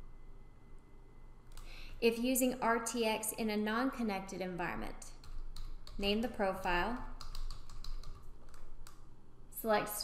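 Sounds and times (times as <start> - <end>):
computer keyboard typing: 5.1 - 9.1.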